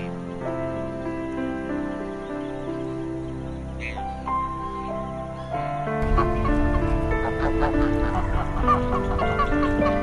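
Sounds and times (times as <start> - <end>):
geese calling: 0.0 - 0.3, 3.7 - 10.0
soft background music: 0.0 - 10.0.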